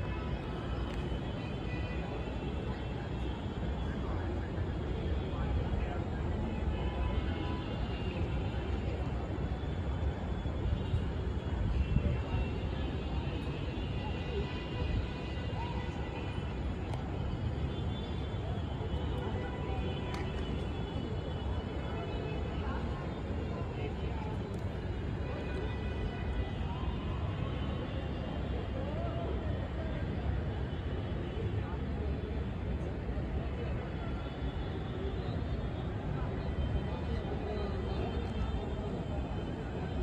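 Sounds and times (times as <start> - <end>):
indistinct distant voices: 0.0 - 40.0.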